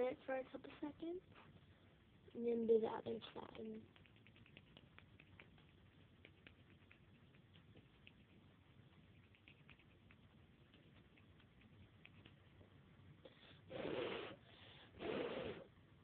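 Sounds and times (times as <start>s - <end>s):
faint small clicks and scratches: 3.3s - 13.3s.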